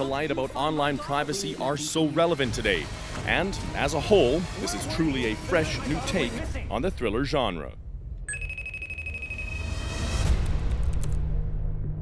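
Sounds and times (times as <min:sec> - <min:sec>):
high electronic call alert tone: 0:08.3 - 0:09.7.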